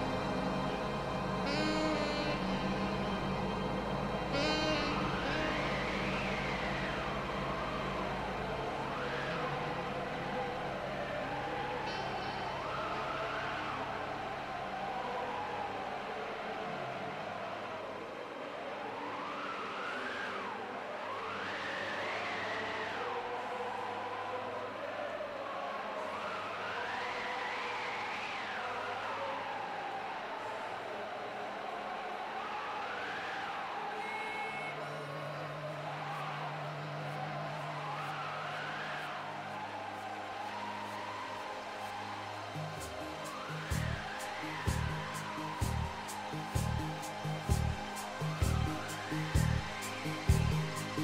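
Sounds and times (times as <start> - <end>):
siren wailing: 0.0 - 17.6, 18.3 - 51.0.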